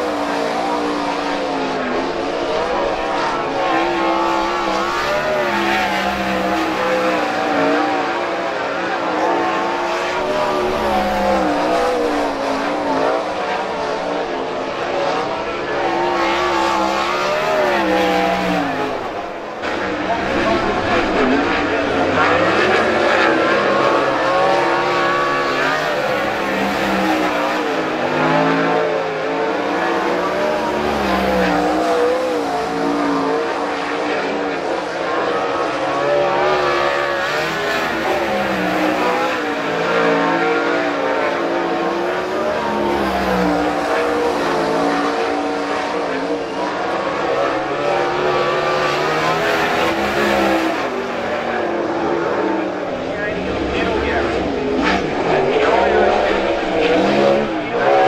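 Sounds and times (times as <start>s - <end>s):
race car engine revving: 0.0s - 58.0s.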